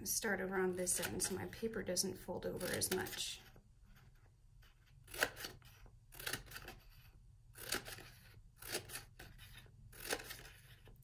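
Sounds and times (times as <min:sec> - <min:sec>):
scissors snipping paper: 0:00.8 - 0:01.4, 0:02.5 - 0:03.4, 0:04.8 - 0:11.0.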